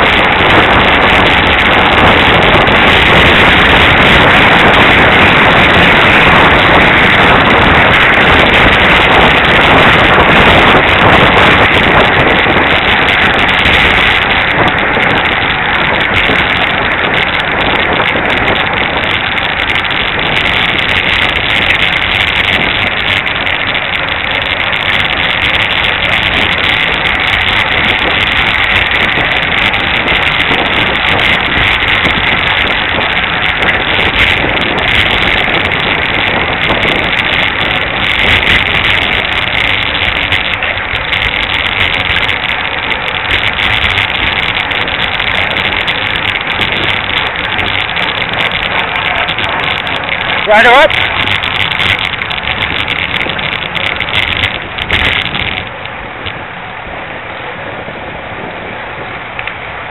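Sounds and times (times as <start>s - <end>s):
road noise: 0.0s - 59.9s
wind noise on microphone: 0.0s - 59.9s.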